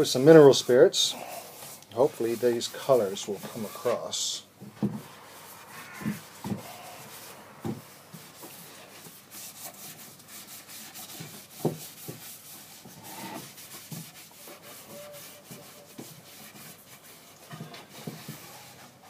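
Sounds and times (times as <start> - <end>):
rag rubbing on wood: 0.0 - 19.0.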